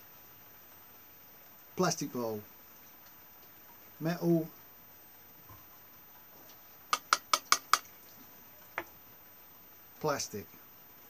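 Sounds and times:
metallic taps on fuel bottle: 7.0s - 7.8s.

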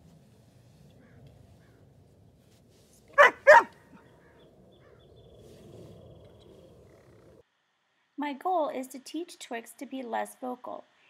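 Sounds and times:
dog barking: 3.2s - 4.0s.

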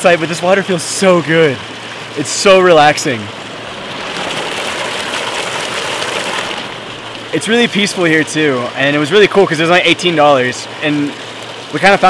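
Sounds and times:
water pouring over rocks: 0.1s - 12.0s.

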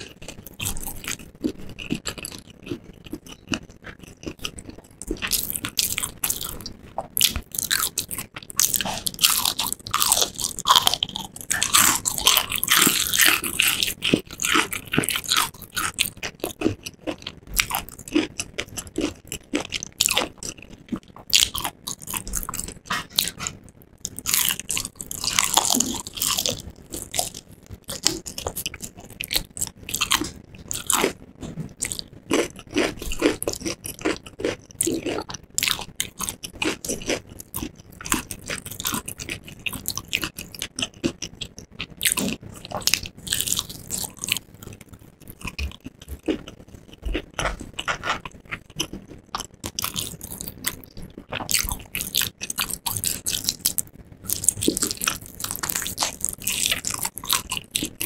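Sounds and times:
crunchy chewing of fried chicken: 0.0s - 58.0s.

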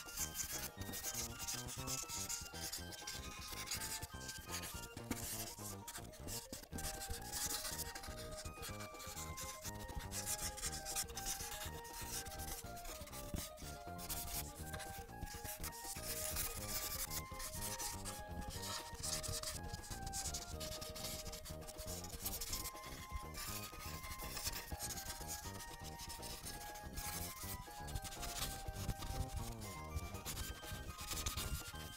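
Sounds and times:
light background music: 0.0s - 31.9s
marker scrubbing over paper: 0.0s - 31.9s.

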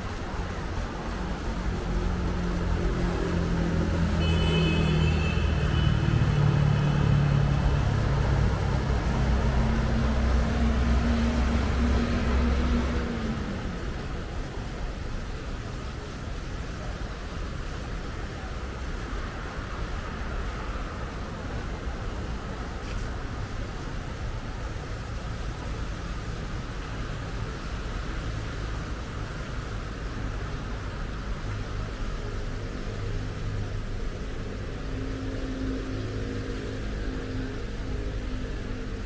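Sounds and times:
heavy vehicle engine hum: 0.0s - 39.0s
road traffic: 0.0s - 39.0s.

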